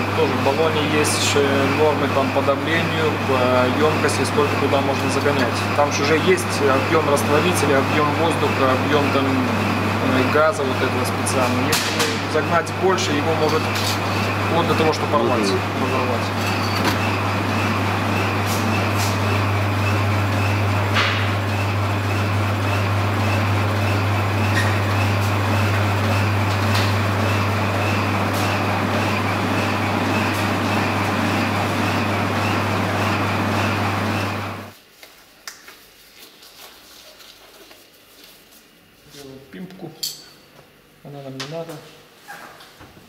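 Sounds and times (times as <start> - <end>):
workshop machinery running: 0.0 - 34.8.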